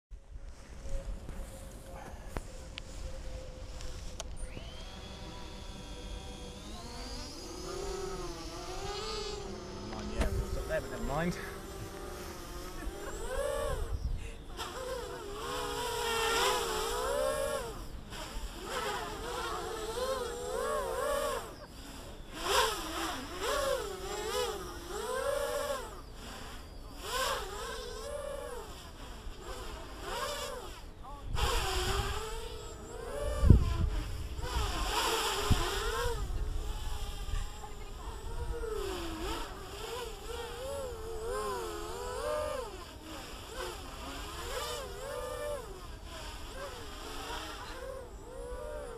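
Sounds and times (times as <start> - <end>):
quadcopter propellers buzzing: 0.6 - 48.9.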